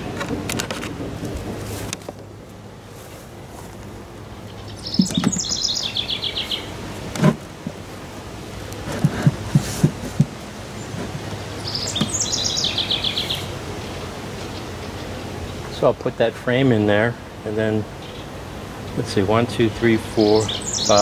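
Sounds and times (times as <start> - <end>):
songbird singing: 1.3 - 21.0
sharp taps on beehive frames: 4.9 - 5.7, 8.6 - 12.2.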